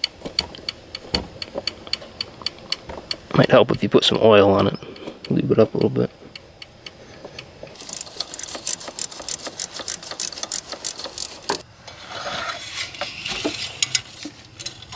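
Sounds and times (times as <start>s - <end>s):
rapid light metallic clicks: 4.6s - 11.6s
sharp metal click: 7.7s - 11.6s.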